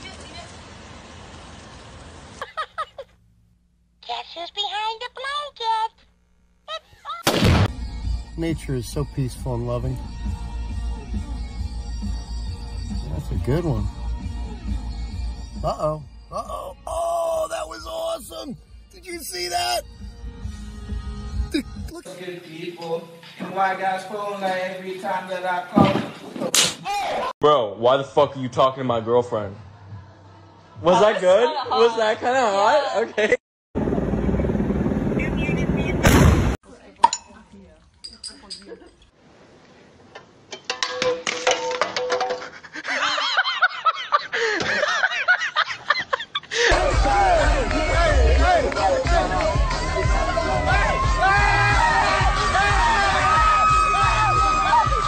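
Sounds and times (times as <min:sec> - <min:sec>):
loud blast with low rumble: 0:36.0 - 0:36.6.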